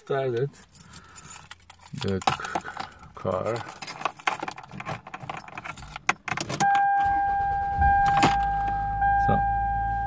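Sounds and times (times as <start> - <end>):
car engine cranking and idling: 0.1 - 10.0
keys jangling: 0.4 - 6.6.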